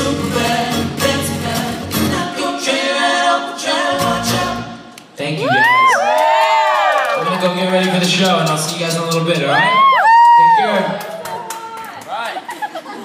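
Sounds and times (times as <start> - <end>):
male voices singing in harmony: 0.0 - 5.0.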